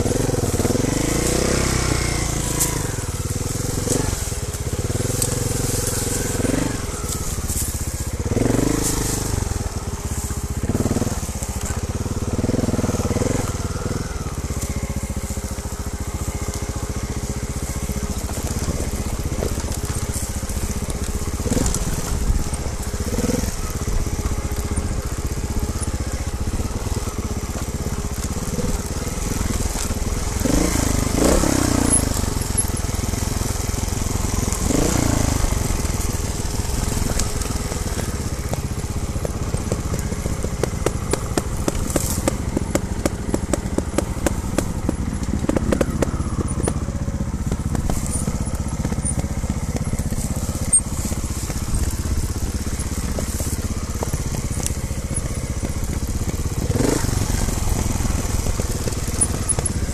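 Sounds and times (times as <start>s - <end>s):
motorcycle engine at low revs: 0.0s - 59.9s
tyres crunching over leaves: 0.0s - 59.9s.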